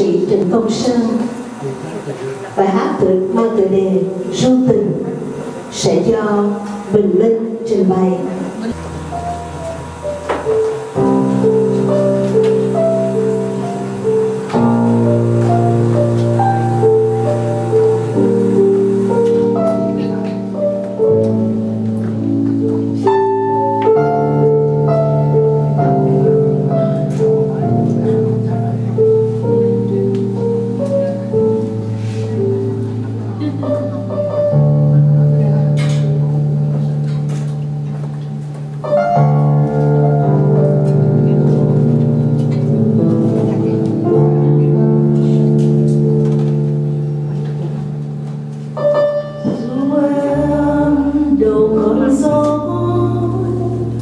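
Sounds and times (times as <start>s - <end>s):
slow piano ballad: 0.0s - 54.0s
sustained instrumental chord: 8.2s - 54.0s.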